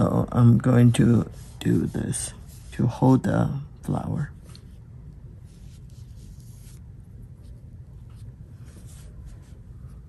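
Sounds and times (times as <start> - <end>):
low steady hum: 0.0 - 10.0
brush swishing across paper: 0.3 - 3.2, 5.4 - 10.0.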